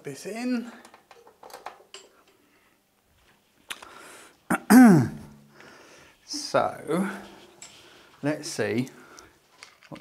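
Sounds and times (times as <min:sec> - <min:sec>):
man making loud vocal sound: 0:04.5 - 0:05.3.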